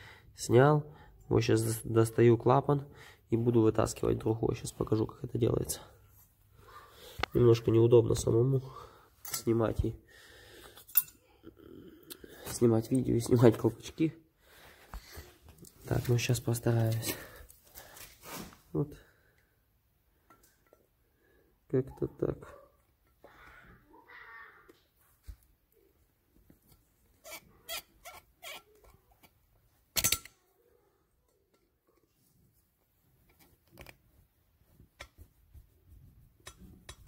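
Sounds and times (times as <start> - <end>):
faint handling noise: 14.6 - 18.8, 31.1 - 37.0
pliers squeaky scraping: 27.2 - 29.3
sharp metallic clink: 30.0 - 30.4.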